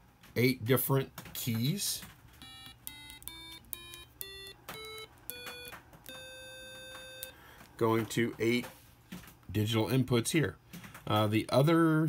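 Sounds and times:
buzzy square-wave beeps: 2.4s - 7.4s.

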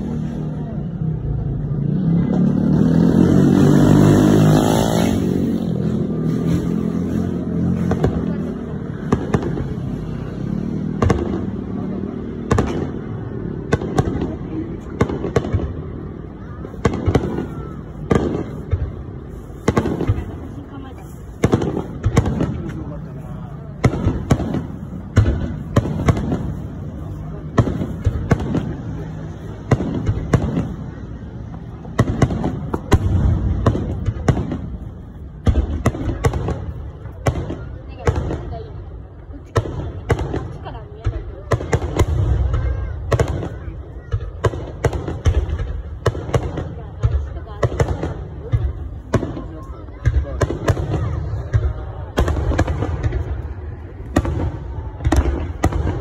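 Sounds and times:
fireworks bursting: 0.0s - 56.0s.

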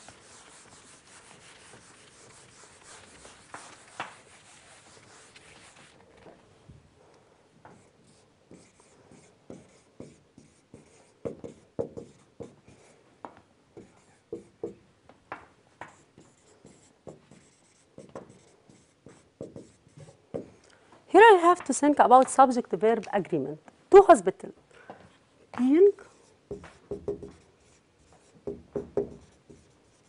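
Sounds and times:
marker pen writing on whiteboard: 0.0s - 6.0s, 7.7s - 12.9s, 13.8s - 14.8s, 15.8s - 20.6s, 26.2s - 30.0s.

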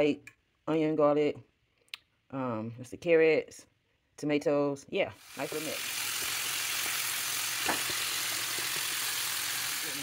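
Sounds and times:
fish deep-frying in oil: 5.2s - 10.0s.

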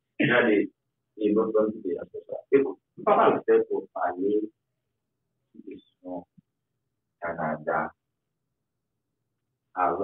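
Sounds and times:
man speaking: 0.2s - 4.6s, 7.2s - 8.0s, 9.8s - 10.0s.

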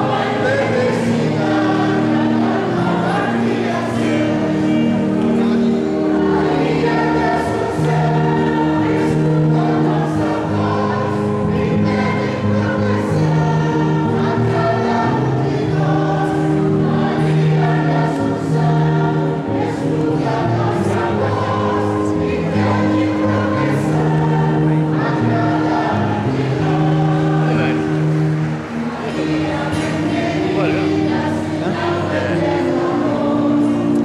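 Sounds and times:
choir singing a hymn: 0.0s - 34.0s.

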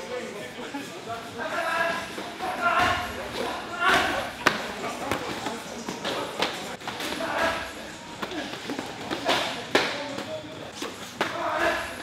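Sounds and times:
men's voices: 1.2s - 12.0s.

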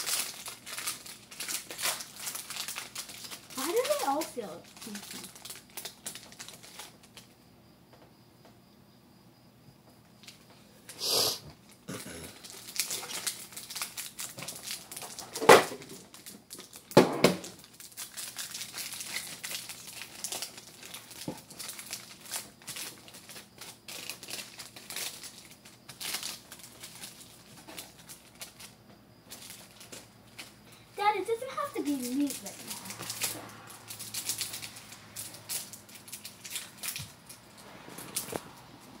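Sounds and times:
sharp foil rips: 0.0s - 7.2s, 12.3s - 30.6s, 31.4s - 38.5s
foil wrappers crinkling: 0.0s - 7.4s, 11.6s - 38.9s.

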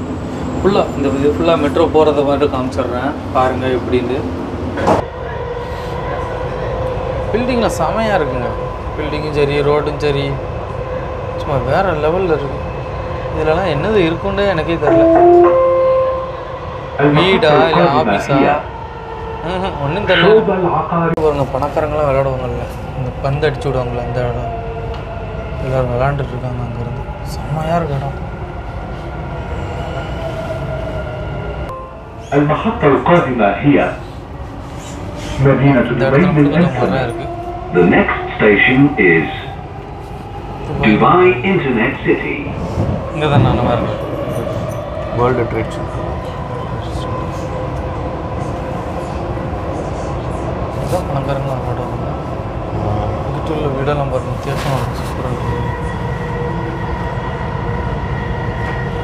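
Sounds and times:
train rumbling on track: 0.0s - 59.0s.

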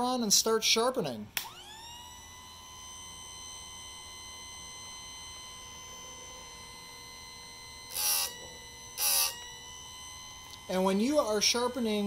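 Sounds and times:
grinder motor whine: 1.4s - 12.0s
grinding wheel on metal: 7.9s - 9.6s.

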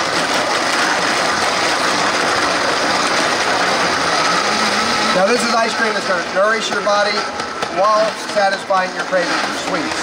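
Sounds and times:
blender motor churning ice: 0.0s - 10.0s.

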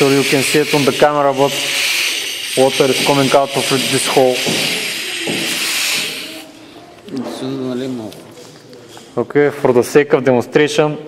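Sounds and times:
compressed air hissing: 0.0s - 6.6s.

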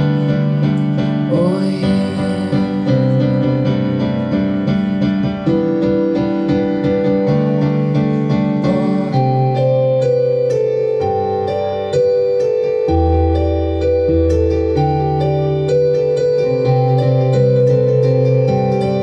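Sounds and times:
electronic keyboard piano chords: 0.0s - 19.0s.

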